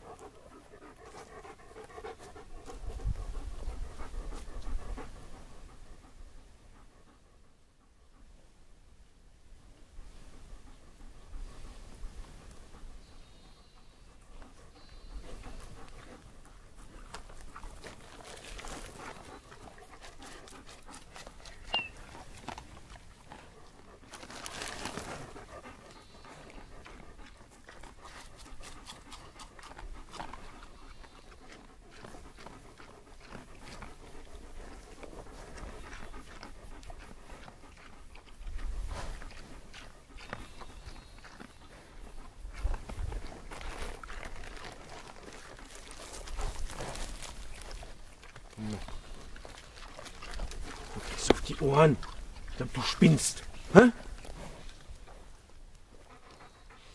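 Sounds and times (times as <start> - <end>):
dog panting: 0.0 - 8.6, 10.3 - 56.9.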